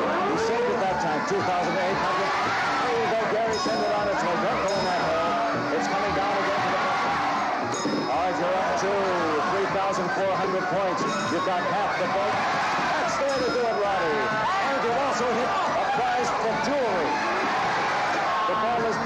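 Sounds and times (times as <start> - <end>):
excited crowd shouting and cheering: 0.0 - 19.0.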